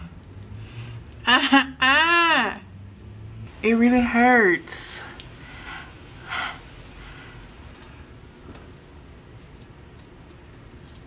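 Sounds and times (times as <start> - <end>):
person breathing: 5.0 - 7.6.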